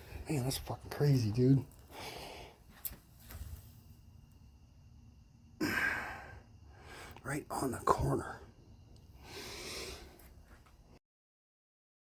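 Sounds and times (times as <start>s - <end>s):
man sighing: 5.6s - 6.4s.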